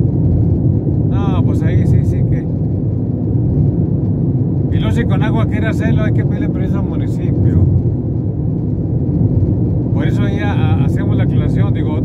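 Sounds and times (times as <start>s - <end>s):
car driving at highway speed: 0.0s - 12.0s.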